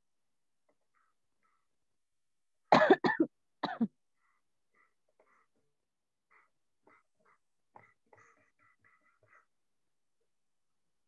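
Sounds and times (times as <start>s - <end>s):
person coughing: 2.7s - 3.9s.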